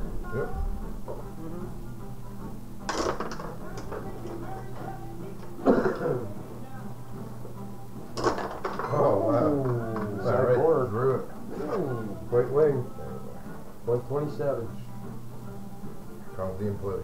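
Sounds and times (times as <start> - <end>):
table hockey pieces clattering: 2.9 - 5.5, 8.1 - 9.0.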